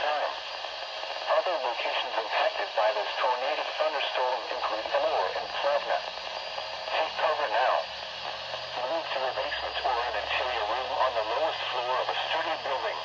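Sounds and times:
synthesized voice over small speaker: 0:01.3 - 0:06.1, 0:06.9 - 0:07.9, 0:08.8 - 0:13.0.

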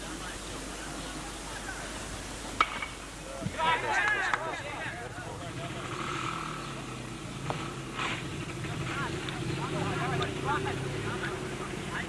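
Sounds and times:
outdoor background noise: 0:00.0 - 0:12.0
bat hitting ball ping: 0:02.6 - 0:03.0.

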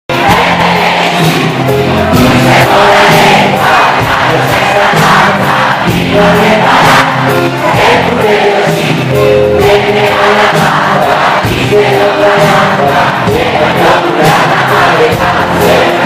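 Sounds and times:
crowd voices: 0:00.1 - 0:16.0
drum and cymbal hits: 0:00.1 - 0:16.0
live rock band playing: 0:00.1 - 0:16.0
man singing into a microphone: 0:02.4 - 0:16.0.

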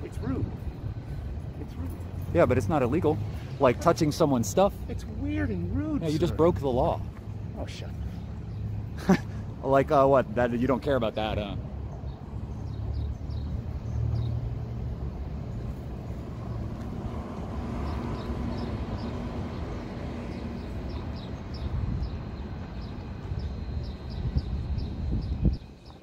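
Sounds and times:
vehicle engine rumbling: 0:00.0 - 0:25.8.

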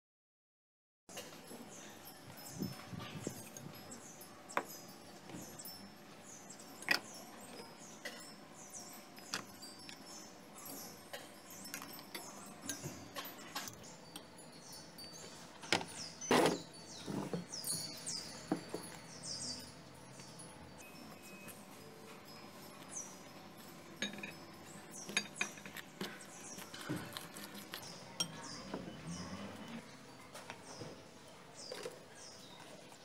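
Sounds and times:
birds chirping: 0:01.1 - 0:33.0
cutlery scraping a glass bowl: 0:15.1 - 0:19.1, 0:24.0 - 0:29.9.

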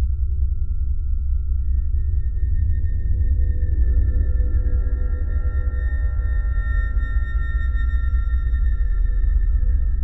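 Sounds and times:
eerie ambient music: 0:00.1 - 0:10.0.

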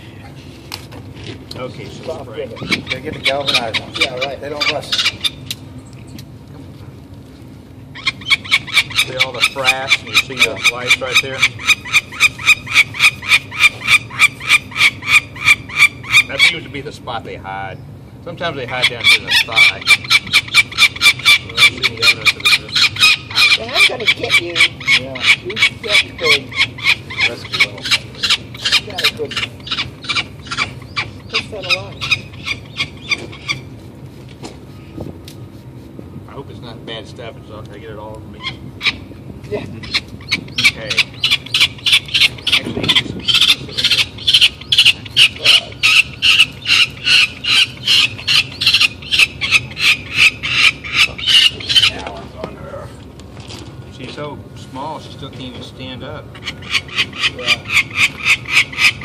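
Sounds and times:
falcon chick calling: 0:02.1 - 0:05.6, 0:07.9 - 0:16.7, 0:18.5 - 0:33.8, 0:38.4 - 0:52.2, 0:55.1 - 0:59.0.

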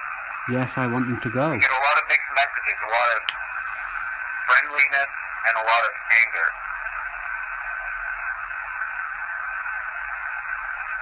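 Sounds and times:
faint steady whine: 0:00.0 - 0:11.0
tinny speaker hiss: 0:00.0 - 0:11.0.

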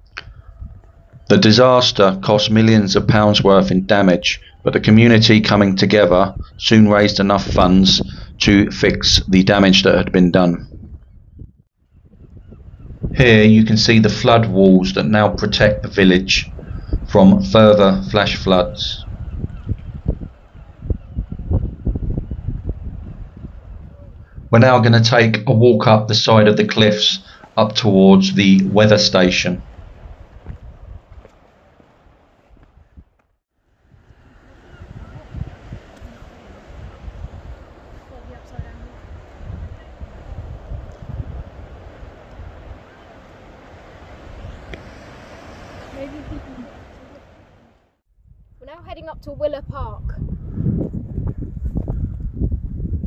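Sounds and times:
wind buffeting microphone: 0:00.0 - 0:01.5, 0:02.3 - 0:24.8, 0:29.4 - 0:33.2, 0:33.8 - 0:47.6, 0:48.2 - 0:53.0
sea waves breaking on rocks: 0:34.1 - 0:47.7.

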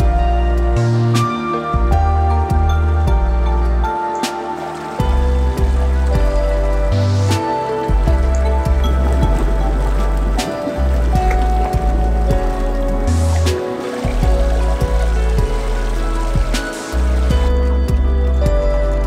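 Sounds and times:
background music with chords: 0:00.0 - 0:19.0.

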